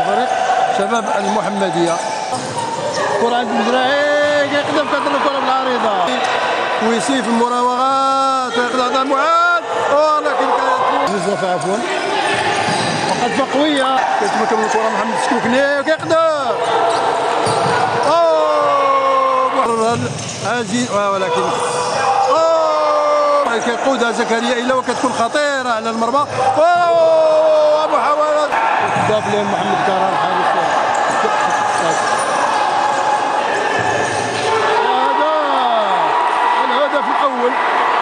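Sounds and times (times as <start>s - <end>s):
people shouting: 0.0s - 20.1s, 21.0s - 38.0s.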